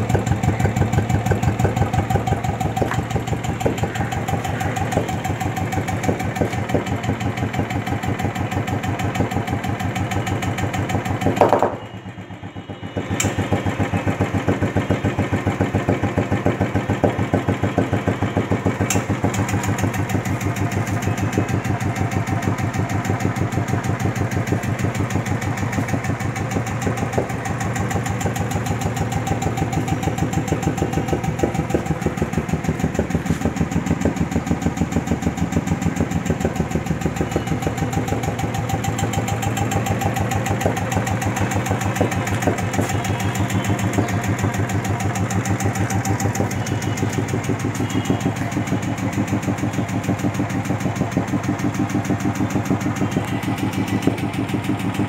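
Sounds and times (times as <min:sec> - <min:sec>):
motorcycle engine idling: 0:00.0 - 0:55.0.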